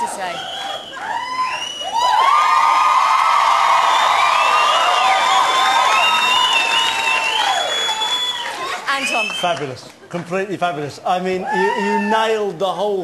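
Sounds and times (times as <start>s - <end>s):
audience cheering and screaming: 0.0s - 9.3s, 11.4s - 12.4s
applause: 0.4s - 10.2s.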